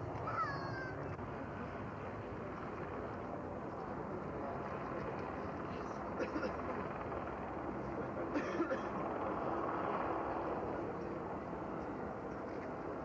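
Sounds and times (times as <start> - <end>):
jet engines roaring: 0.0 - 13.0.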